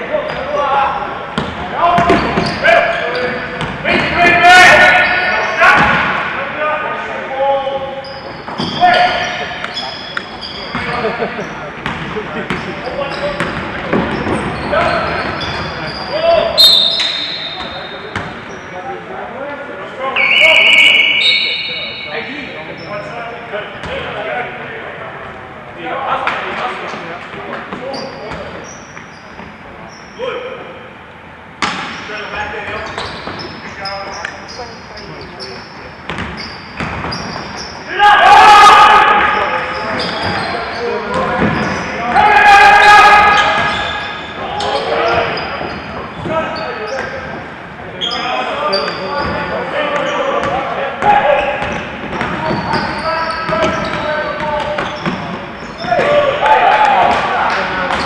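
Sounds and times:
players' voices: 0:00.0 - 0:58.0
sneakers squeaking on floor: 0:00.2 - 0:06.3, 0:07.7 - 0:18.9, 0:20.1 - 0:23.1, 0:26.8 - 0:30.3, 0:31.6 - 0:38.0, 0:39.2 - 0:56.2, 0:57.1 - 0:58.0
people shouting: 0:37.9 - 0:39.8, 0:42.0 - 0:45.2.

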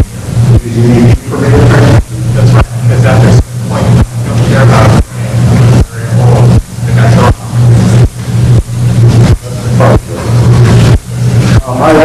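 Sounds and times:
loud low hum: 0:00.0 - 0:12.0
muffled distorted voice: 0:00.0 - 0:12.0.

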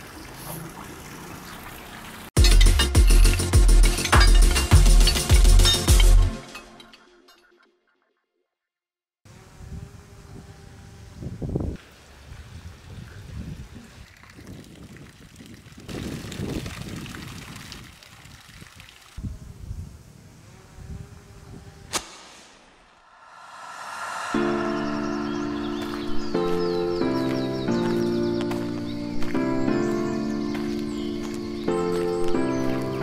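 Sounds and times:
fountain water splashing into pool: 0:00.0 - 0:02.4, 0:13.9 - 0:19.2
music: 0:02.4 - 0:08.3, 0:24.4 - 0:33.0
low rumbles: 0:22.8 - 0:27.2.

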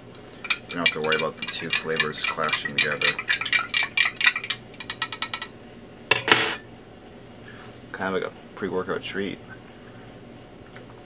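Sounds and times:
spoon clinking in cup: 0:06.1 - 0:06.6
spoon scraping or knocking: 0:06.1 - 0:06.6.

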